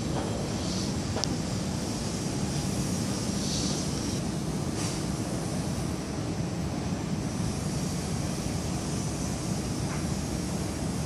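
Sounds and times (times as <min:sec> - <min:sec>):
distant city hum: 0:00.0 - 0:11.0.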